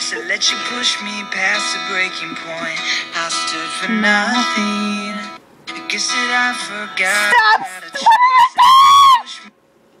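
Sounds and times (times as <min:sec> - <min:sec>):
woman singing: 0:03.6 - 0:05.3, 0:06.6 - 0:08.6
woman shrieking: 0:07.1 - 0:09.3.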